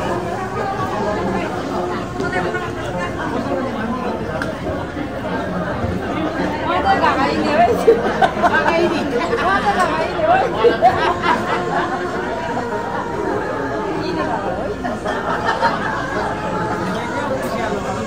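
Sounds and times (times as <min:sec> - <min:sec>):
crowd chattering: 0:00.0 - 0:18.0
nearby voices: 0:00.0 - 0:18.0.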